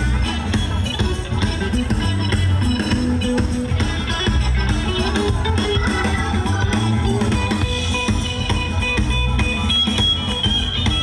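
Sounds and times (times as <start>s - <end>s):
bass: 0.0s - 11.0s
drum kit beat: 0.0s - 11.0s
electric guitar: 0.0s - 11.0s
keyboard: 0.0s - 11.0s.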